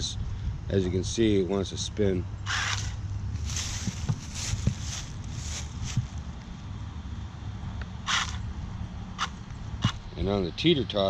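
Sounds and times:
steady low hum: 0.0 - 11.0
toy car tires spinning in dry leaves: 2.5 - 6.2.

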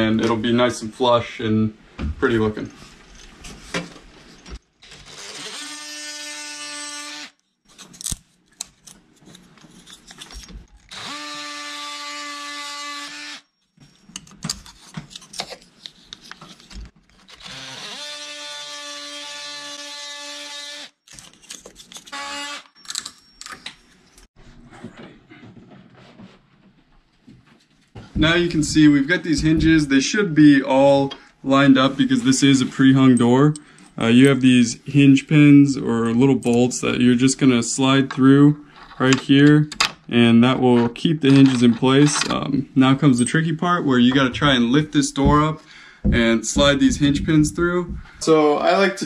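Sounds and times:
oscillating multi-tool buzzing: 10.9 - 13.6.

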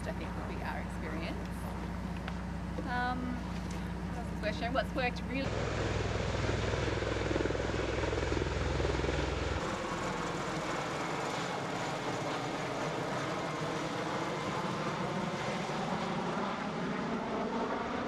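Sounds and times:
tiltrotor aircraft flying overhead: 0.0 - 18.0.

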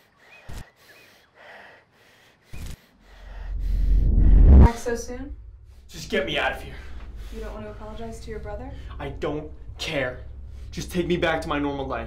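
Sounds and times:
man breathing heavily: 0.0 - 4.5.

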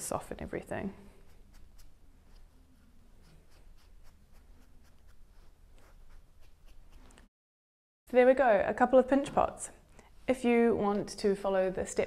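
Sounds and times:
sponge rubbing clay pot: 1.1 - 7.3.

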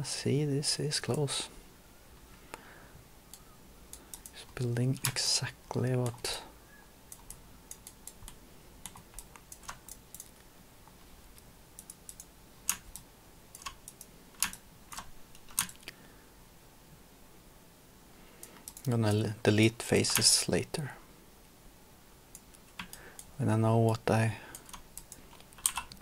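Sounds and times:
computer keyboard clicks: 3.3 - 4.4, 7.1 - 10.4, 11.8 - 15.9, 18.4 - 18.9, 24.5 - 26.0
mouse clicks: 7.1 - 10.5.

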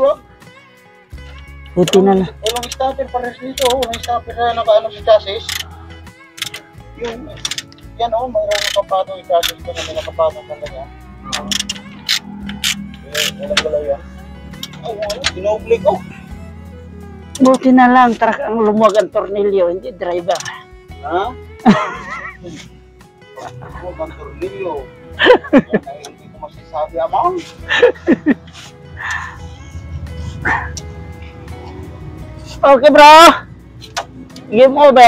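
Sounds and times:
background music: 0.0 - 35.0
wrench clicking: 1.3 - 2.8, 3.6 - 4.1, 5.4 - 6.7, 7.4 - 7.9, 8.5 - 9.8, 11.3 - 13.4, 20.3 - 20.6.

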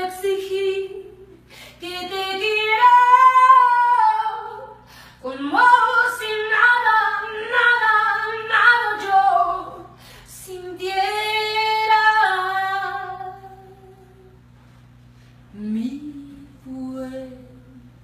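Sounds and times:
woman singing unaccompanied: 0.0 - 14.4, 15.5 - 18.0.

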